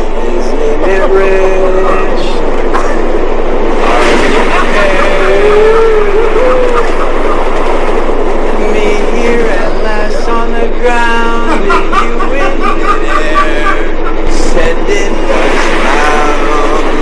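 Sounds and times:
man's voice: 0.0s - 2.5s, 3.8s - 7.0s, 8.5s - 17.0s
subway train rumbling: 0.0s - 17.0s.

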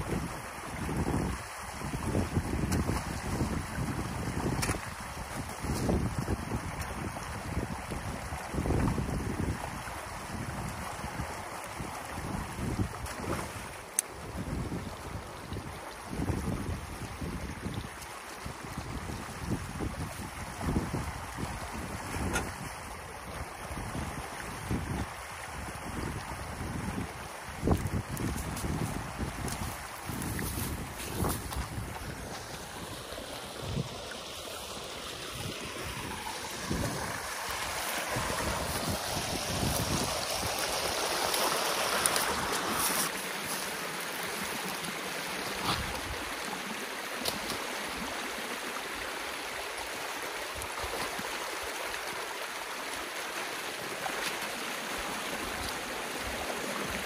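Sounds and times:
wind buffeting microphone: 0.0s - 22.9s, 23.6s - 34.2s, 35.1s - 43.1s
water rushing: 0.0s - 57.0s.

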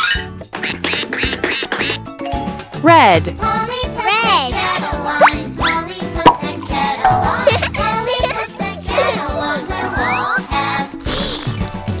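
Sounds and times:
children's background music: 0.0s - 12.0s.

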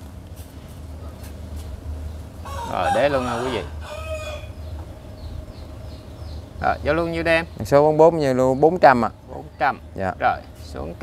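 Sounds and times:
small birds chirping: 0.3s - 11.0s
rooster crowing: 2.4s - 4.7s.

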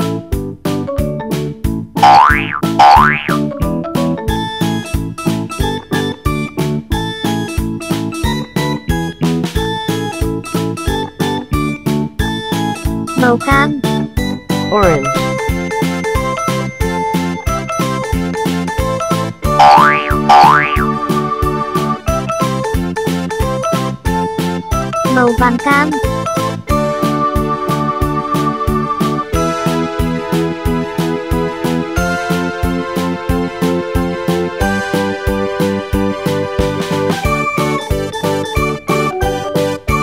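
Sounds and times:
upbeat background music: 1.3s - 11.5s, 12.3s - 40.0s
cartoon boing sound effect: 2.0s - 3.4s, 19.6s - 21.0s
rising and falling pitch glides: 19.6s - 21.0s.

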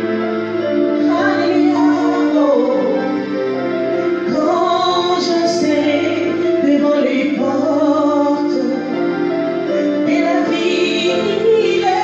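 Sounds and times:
sustained musical backing: 0.0s - 12.0s
woman singing into a microphone: 1.0s - 3.3s, 4.2s - 9.2s, 9.8s - 12.0s.

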